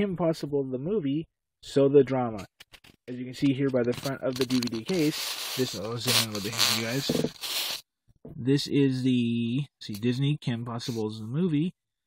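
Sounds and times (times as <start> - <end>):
loud hiss: 4.9 - 7.8.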